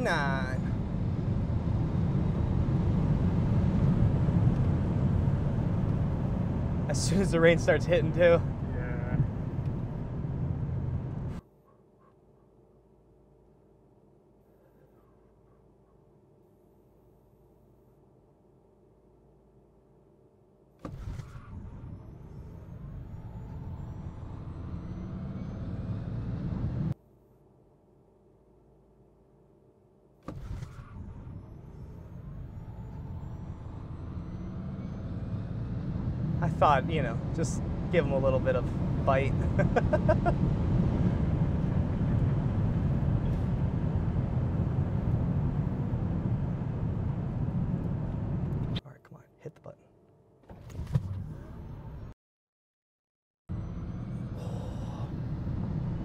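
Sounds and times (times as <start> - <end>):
road and tyre noise: 0.0 - 11.5, 20.7 - 27.0, 30.2 - 48.8, 50.4 - 52.2, 53.5 - 56.0.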